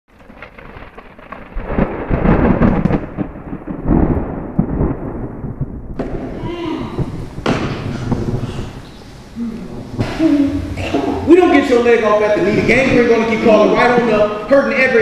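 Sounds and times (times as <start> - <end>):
rain: 0.1 - 15.0
sharp thunder crack: 0.1 - 15.0
thunder rumbling: 0.1 - 15.0.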